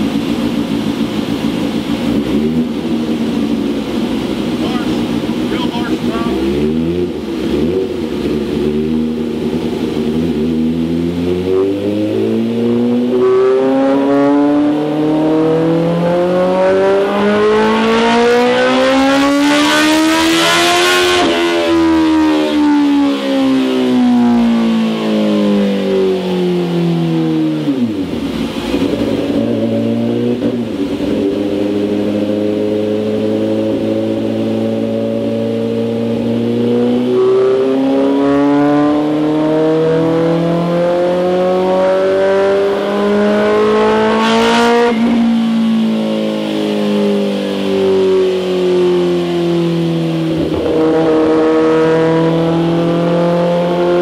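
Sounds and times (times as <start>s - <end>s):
motorcycle engine revving on dyno: 0.0s - 54.0s.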